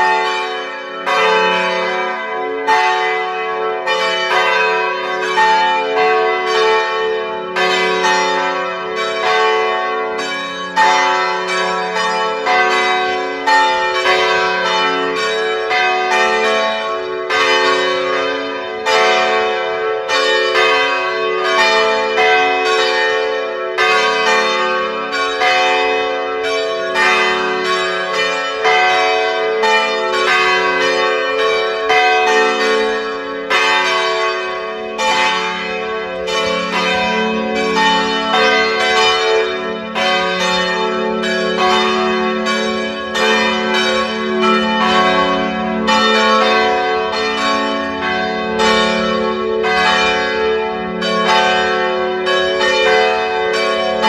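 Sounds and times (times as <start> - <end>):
church bell ringing: 0.0 - 54.0.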